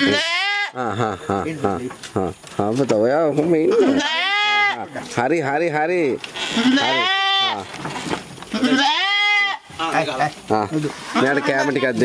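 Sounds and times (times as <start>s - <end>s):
goats bleating: 0.0s - 1.0s, 3.5s - 5.0s, 6.2s - 7.8s, 8.5s - 10.2s, 10.8s - 12.0s.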